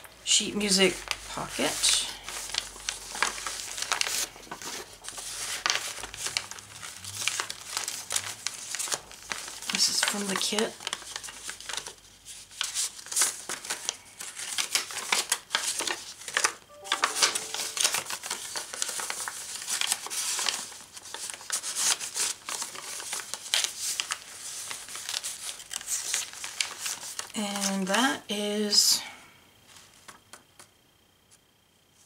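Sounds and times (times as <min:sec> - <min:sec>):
paper rustling and crinkling: 0:00.0 - 0:27.9, 0:29.7 - 0:30.7.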